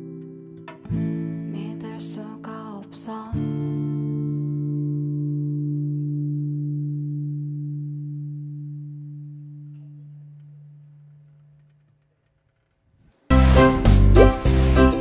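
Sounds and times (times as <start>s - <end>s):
acoustic guitar chord ringing: 0.0s - 11.6s, 13.3s - 15.0s.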